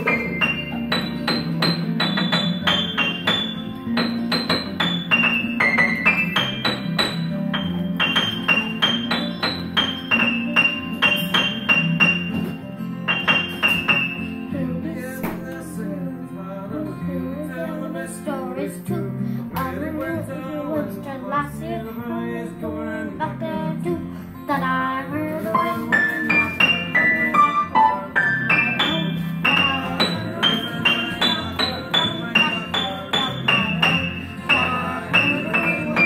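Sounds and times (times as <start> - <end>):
upright piano playing: 0.0 - 36.0
child singing: 14.5 - 36.0.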